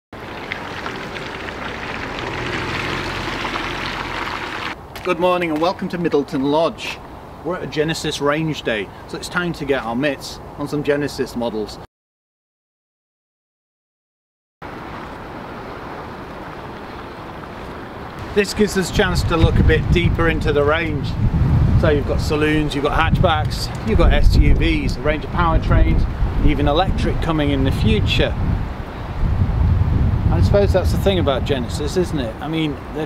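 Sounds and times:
tyres hissing on wet road: 0.2 - 4.8, 14.7 - 19.4
wind rushing over microphone: 18.1 - 33.0.

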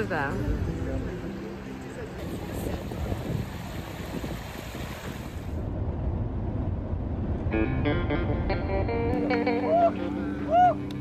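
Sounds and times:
soft background music: 0.0 - 3.0
shallow stream water: 2.2 - 5.6
person shouting woo: 9.5 - 10.9.

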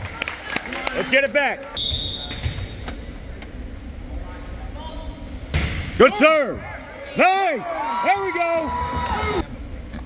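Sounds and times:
murmur of gym: 0.0 - 10.0
referee's whistle: 1.8 - 2.3.

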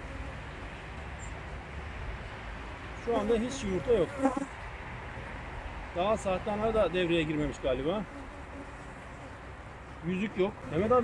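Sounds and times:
honeybees buzzing: 0.0 - 0.8, 3.0 - 4.6, 7.1 - 11.0.

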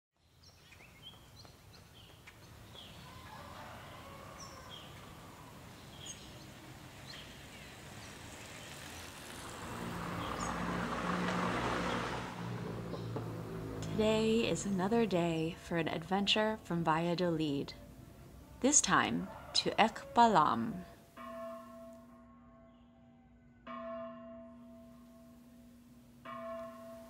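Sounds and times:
birds chirping: 0.2 - 21.0
vehicle engine passing: 5.2 - 16.0.

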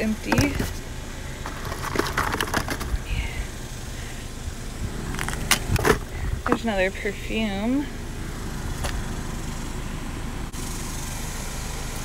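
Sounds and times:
steady low rumble: 0.0 - 11.1
items clicking and clattering: 0.2 - 0.8, 1.4 - 3.0.

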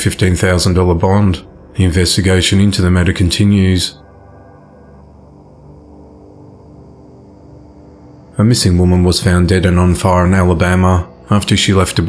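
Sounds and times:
dark ambient drone music: 0.0 - 12.0.

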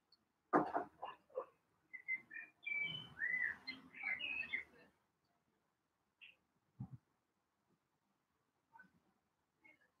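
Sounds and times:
songbird chirping and whistling: 1.9 - 4.7.

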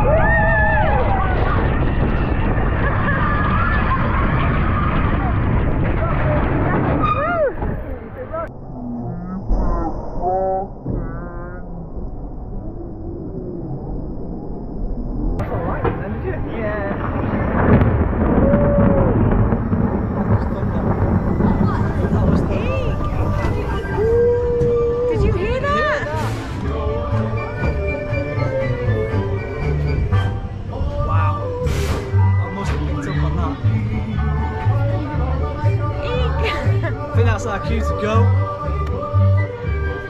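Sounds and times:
roller coaster on track: 0.0 - 14.6, 15.4 - 38.1
music: 25.3 - 40.0.

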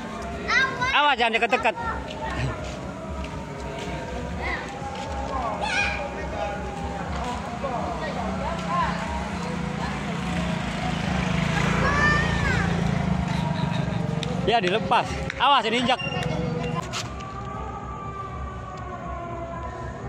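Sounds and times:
children chattering and calling: 0.0 - 14.2.

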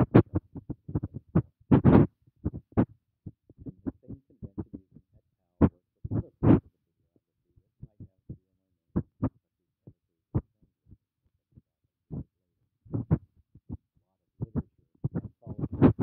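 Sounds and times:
broken voice fragments: 3.6 - 6.7, 14.4 - 16.0.

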